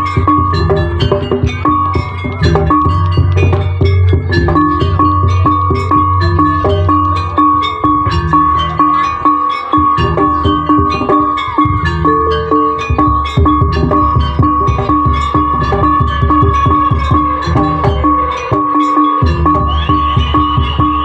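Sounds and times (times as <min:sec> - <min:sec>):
drumming: 0:00.0 - 0:21.0
gamelan gong-chimes: 0:00.0 - 0:21.0
steady high held tone: 0:00.0 - 0:21.0.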